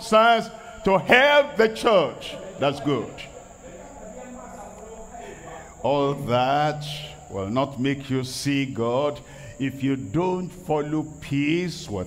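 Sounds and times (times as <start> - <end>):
man's amplified speech: 0.0 - 3.8, 4.4 - 12.0.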